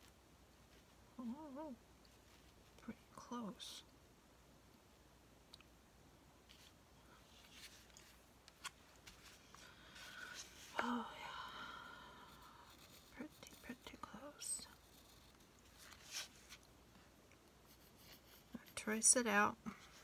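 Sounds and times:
pencil tapping and scratching: 12.3 - 16.0, 17.6 - 19.1.

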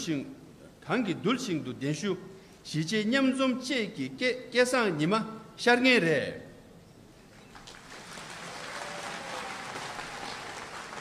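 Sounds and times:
audience clapping: 7.5 - 11.0.

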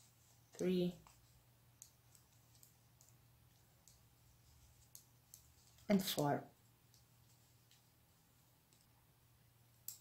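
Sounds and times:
metal knitting needles clicking: 1.0 - 4.1, 4.8 - 5.9, 9.7 - 10.0.

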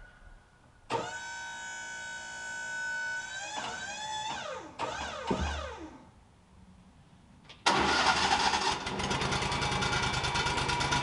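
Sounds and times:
sawmill engine running: 7.7 - 11.0.

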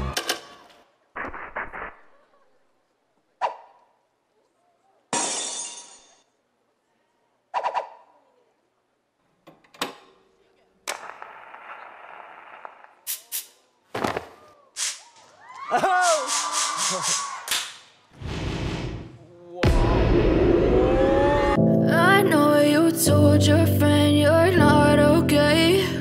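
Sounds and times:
burst of noise: 18.2 - 21.6.

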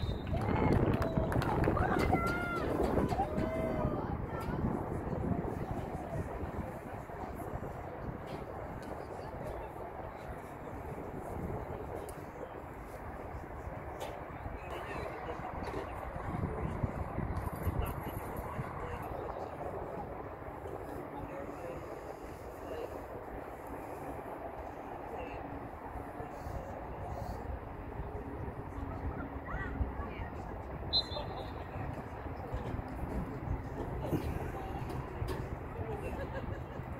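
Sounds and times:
outdoor background noise: 0.0 - 36.9.

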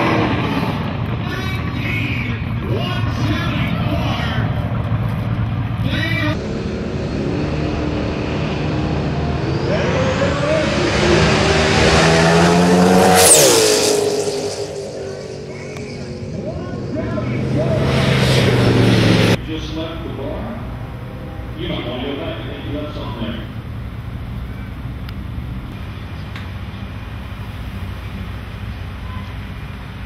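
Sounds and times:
drag car engine accelerating: 0.0 - 25.8.

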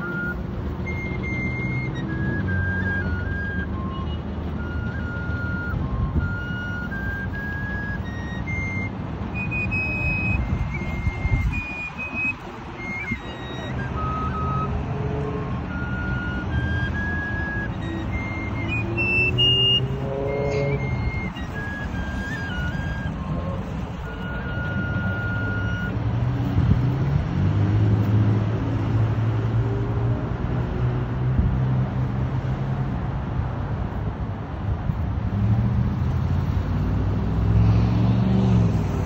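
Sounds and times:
high wind instrument melody: 0.0 - 30.8
slow rising tone: 16.6 - 24.2.

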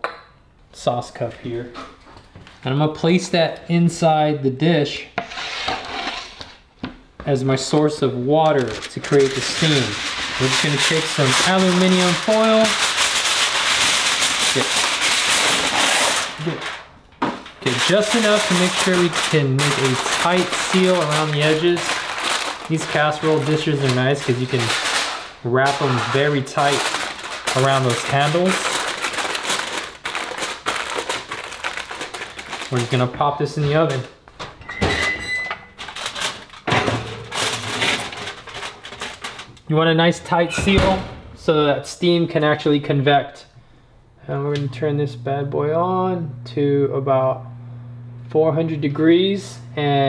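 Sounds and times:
dish scraping on oven rack: 5.2 - 6.6
aluminium foil crinkling: 7.6 - 34.2, 35.8 - 39.7.

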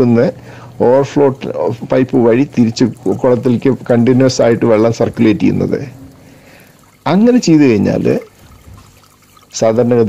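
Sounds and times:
man speaking: 0.0 - 6.0, 7.1 - 8.3, 9.6 - 10.0
aeration bubbling: 0.0 - 10.0
water trickling into a tank: 0.0 - 10.0.

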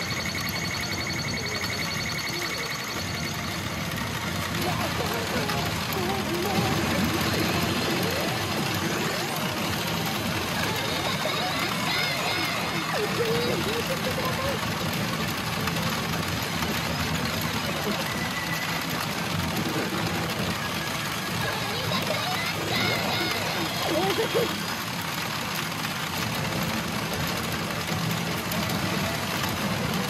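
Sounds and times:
clatter of steel balls: 0.0 - 30.0
machine electronic sound effects: 0.0 - 30.0.

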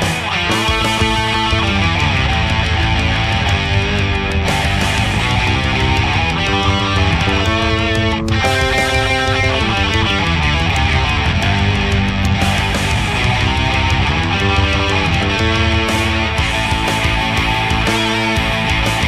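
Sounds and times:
electric guitar lead lines: 0.0 - 19.0
rock backing track drums: 0.0 - 19.0.

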